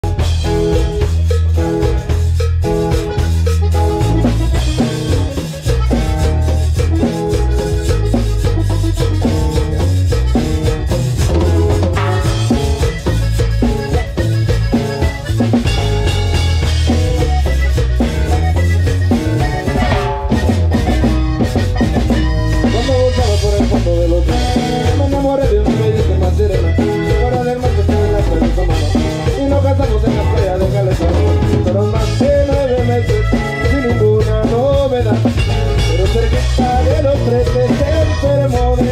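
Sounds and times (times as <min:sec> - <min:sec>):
accordion melody: 0:00.0 - 0:38.9
drum kit: 0:00.0 - 0:38.9
electric bass: 0:00.0 - 0:38.9
hand percussion: 0:00.0 - 0:38.9
live cumbia band: 0:00.0 - 0:38.9
strummed guitar: 0:00.0 - 0:38.9.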